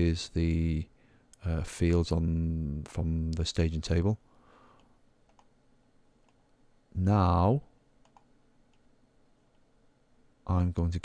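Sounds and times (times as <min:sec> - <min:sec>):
computer mouse clicks: 0:04.8 - 0:05.5, 0:06.2 - 0:06.5, 0:08.0 - 0:09.7.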